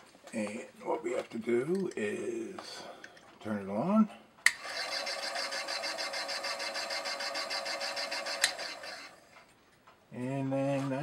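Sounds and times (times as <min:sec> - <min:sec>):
pivot polisher running: 0:04.5 - 0:09.2.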